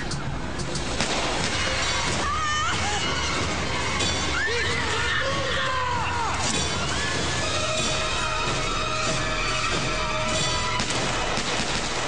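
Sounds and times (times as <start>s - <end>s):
dramatic music: 0.8s - 12.0s
rifle shot: 1.0s - 2.2s, 10.8s - 12.0s
people shouting and screaming: 1.6s - 10.9s
crashing and shattering: 6.4s - 12.0s.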